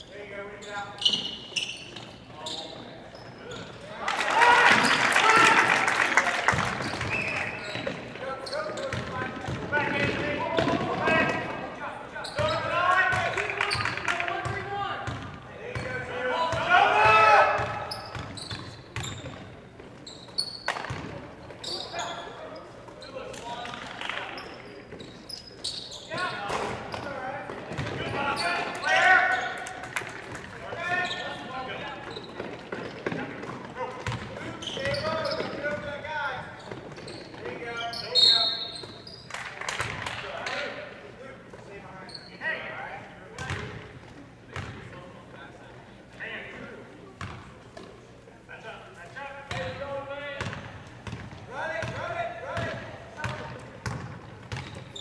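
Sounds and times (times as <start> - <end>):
basketball bouncing on wooden floor: 52.6 - 54.8.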